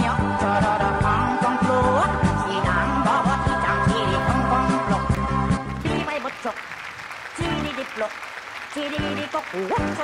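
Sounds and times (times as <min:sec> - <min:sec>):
quiet music: 0:00.0 - 0:06.2
applause: 0:05.1 - 0:10.0.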